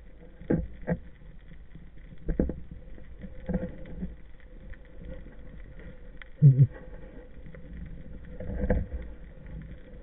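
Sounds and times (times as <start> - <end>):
underwater water rush: 0.0 - 10.0.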